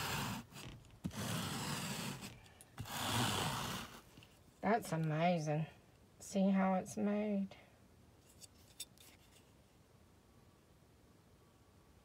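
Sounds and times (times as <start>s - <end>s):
pet hair remover scraping carpet: 0.0s - 4.0s.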